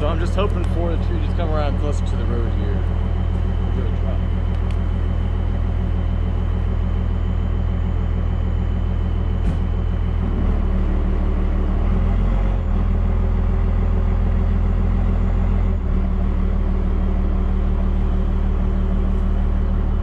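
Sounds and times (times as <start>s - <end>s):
truck engine running under load: 0.0s - 20.0s.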